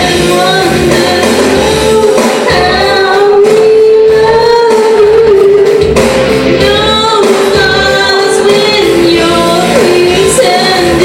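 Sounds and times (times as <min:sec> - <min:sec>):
backing music: 0:00.0 - 0:11.0
woman singing karaoke: 0:00.0 - 0:11.0.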